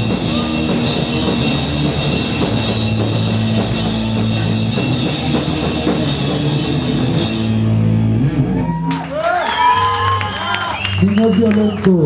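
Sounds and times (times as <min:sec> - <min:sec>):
punk rock band playing: 0:00.0 - 0:09.2.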